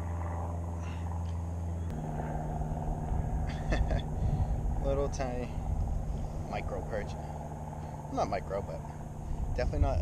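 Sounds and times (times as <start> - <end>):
motorboat engine droning: 0.0 - 10.0
short laugh: 3.4 - 4.2.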